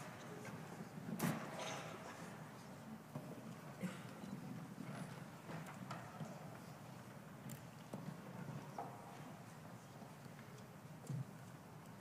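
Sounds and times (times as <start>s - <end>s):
murmur of rustling: 0.0s - 12.0s.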